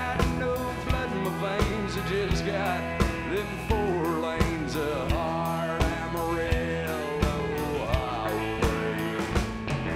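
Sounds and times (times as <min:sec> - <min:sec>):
electric guitar bending notes: 0:00.0 - 0:09.9
honky-tonk band playing: 0:00.0 - 0:09.9.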